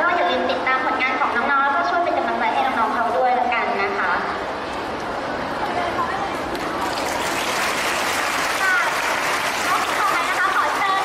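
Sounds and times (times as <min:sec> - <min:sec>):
audience applauding: 0:06.6 - 0:11.0.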